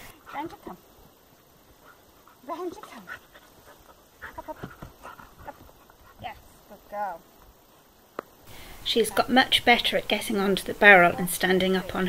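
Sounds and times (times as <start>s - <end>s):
dog panting: 1.7s - 6.6s.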